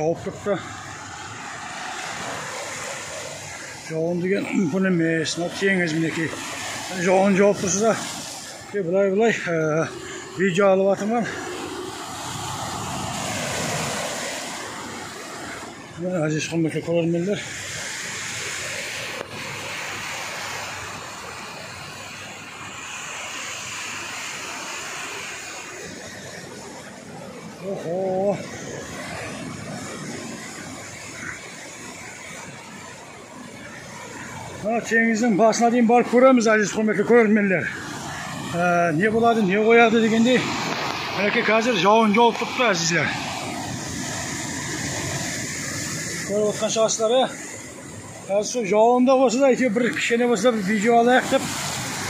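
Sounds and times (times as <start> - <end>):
waves breaking on rocks: 0.0 - 52.0.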